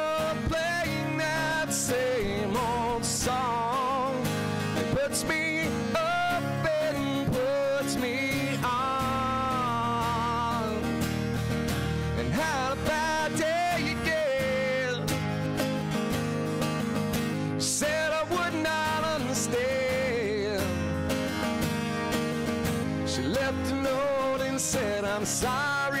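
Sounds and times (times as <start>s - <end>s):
man singing with vibrato: 0.0s - 11.2s, 12.0s - 15.5s, 17.4s - 21.2s, 22.8s - 26.0s
acoustic guitars strummed: 0.0s - 26.0s.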